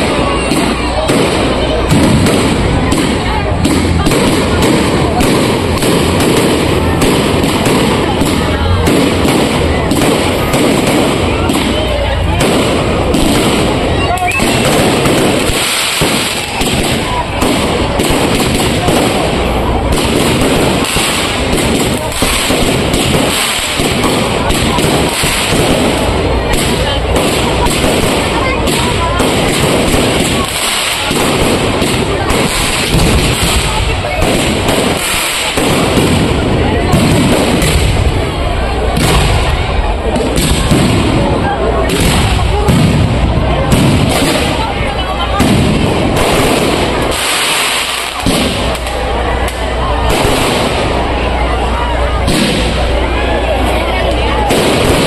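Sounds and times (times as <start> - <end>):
fireworks bangs and crackling: 0.0 - 55.0.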